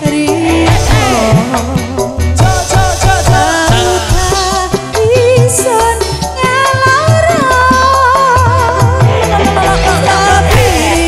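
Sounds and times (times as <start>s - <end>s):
steady drum beat: 0.0s - 11.0s
woman singing: 0.0s - 11.0s.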